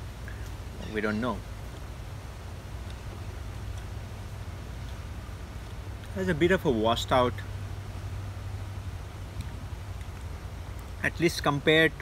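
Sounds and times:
faint even hiss: 0.0s - 12.0s
low outdoor rumble: 0.0s - 12.0s.

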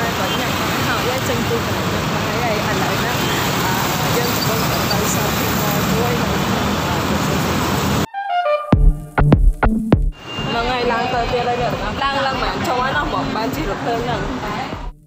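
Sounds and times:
dense road traffic: 0.0s - 8.1s, 10.1s - 14.9s
music with sharp drum beats: 8.7s - 15.0s
woman talking: 10.4s - 14.9s.

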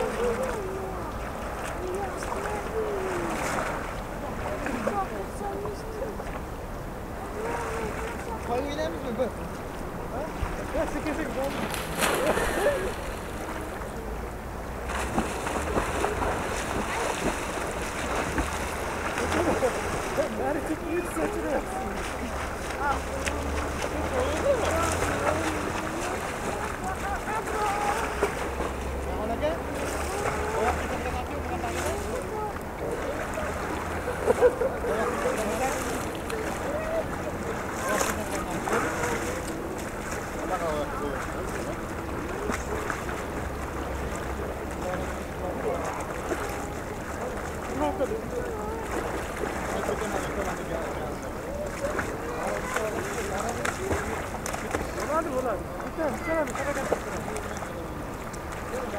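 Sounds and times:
chatter of voices: 0.0s - 14.6s, 15.6s - 58.9s
people laughing: 19.2s - 22.4s, 33.8s - 35.8s.

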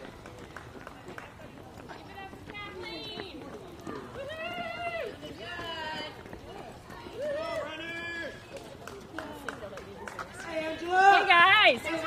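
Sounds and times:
footsteps slapping pavement: 0.0s - 12.0s
spectators shouting encouragement: 7.0s - 8.4s.

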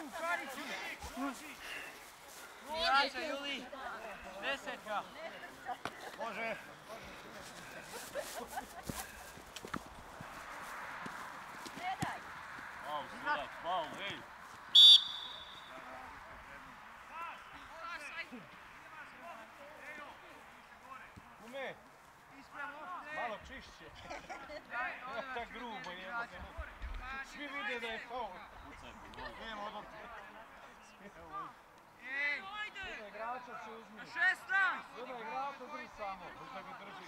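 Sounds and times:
distant players shouting: 11.7s - 16.2s
referee's whistle blast: 14.7s - 15.8s.

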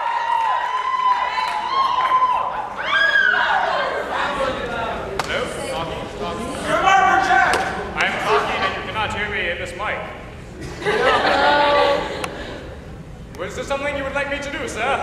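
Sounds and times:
audience calling out and talking: 1.9s - 13.4s.

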